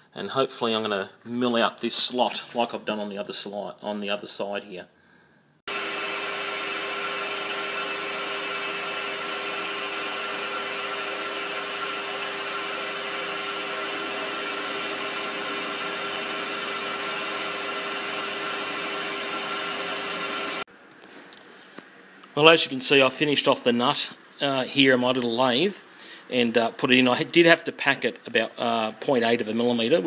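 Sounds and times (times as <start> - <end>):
metal lathe milling whine: 5.7 - 20.6.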